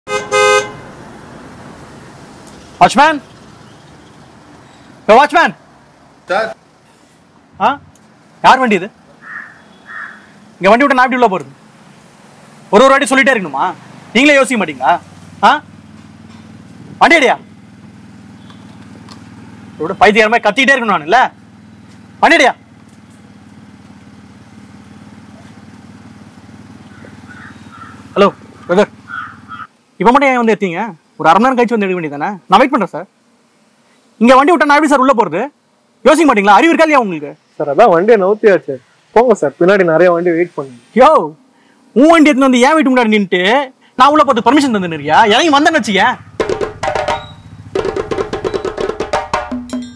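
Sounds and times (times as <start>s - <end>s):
car horn honking: 0.1s - 1.2s, 9.3s - 10.3s
vehicle engine idling: 0.1s - 30.0s, 43.8s - 49.4s.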